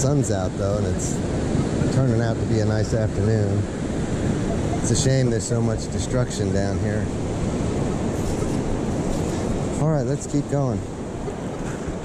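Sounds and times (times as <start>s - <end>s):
wind on microphone: 0.0s - 9.8s
ocean surf rushing: 0.0s - 12.0s.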